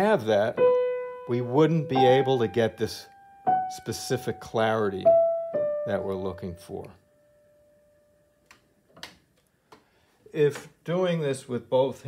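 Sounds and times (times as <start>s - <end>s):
piano note ringing: 0.0s - 8.4s.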